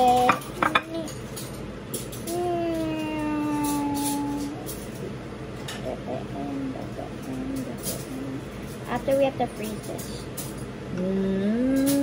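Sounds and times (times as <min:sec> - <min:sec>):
person humming: 0:02.3 - 0:04.7, 0:05.8 - 0:08.6, 0:10.9 - 0:12.0.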